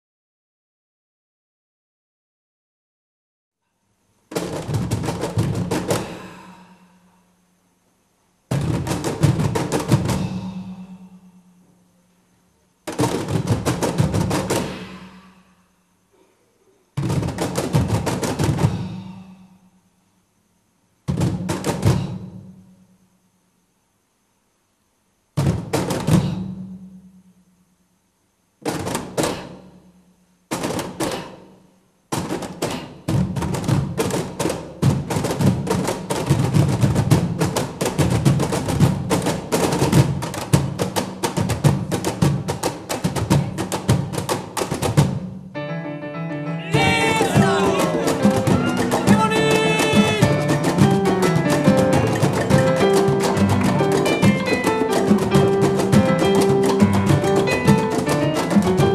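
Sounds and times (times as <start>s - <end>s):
hand drums slapped in rhythm: 32.1s - 45.4s, 46.7s - 58.9s.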